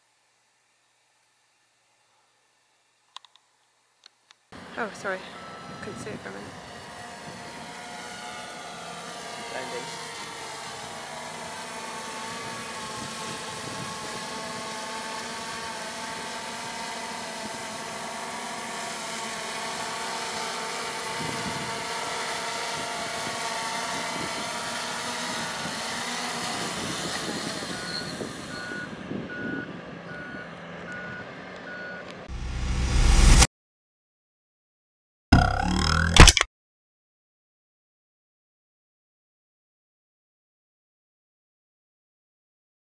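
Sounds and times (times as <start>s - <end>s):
quadcopter motors whining: 4.6s - 33.4s
short electronic beeps: 27.8s - 29.6s.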